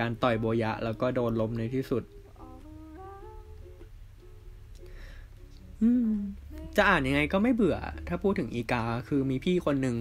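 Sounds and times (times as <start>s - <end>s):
faint tune of held notes: 0.0s - 10.0s
steady low hum: 0.0s - 10.0s.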